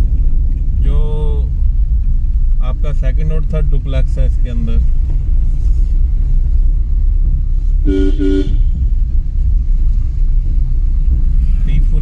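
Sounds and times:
low rumble: 0:00.0 - 0:12.0
motorcycle horn beeps: 0:07.8 - 0:08.8.

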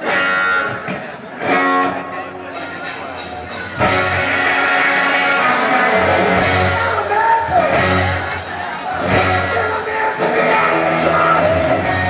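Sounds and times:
live rock band over pa: 0:00.0 - 0:12.0
loud electric guitar chords: 0:00.0 - 0:12.0.

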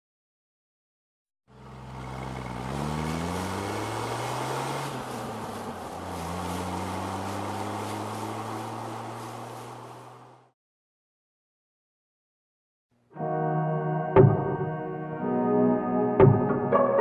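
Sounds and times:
car engine accelerating: 0:01.5 - 0:10.6.

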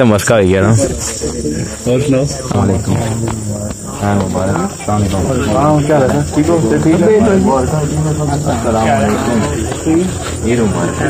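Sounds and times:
crickets chirping: 0:00.3 - 0:11.0
men exchanging greetings: 0:00.6 - 0:11.0.

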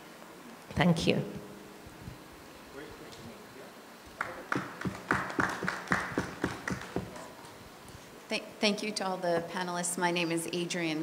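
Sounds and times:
people clapping: 0:04.1 - 0:07.6.

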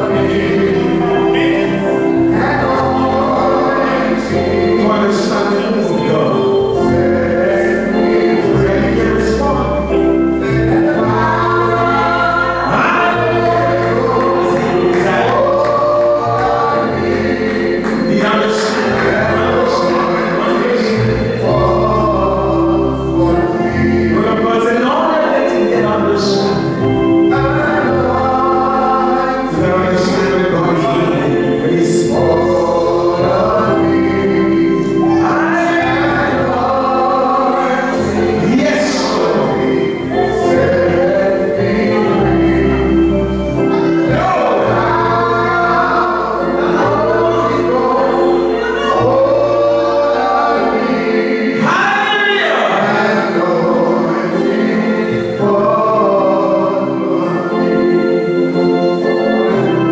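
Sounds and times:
group singing gospel: 0:00.0 - 0:59.9
held bass notes: 0:00.0 - 0:59.9.

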